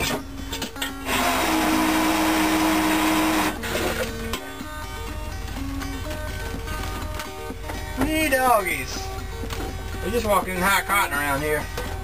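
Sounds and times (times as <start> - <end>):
background music with held notes: 0.0 - 12.0.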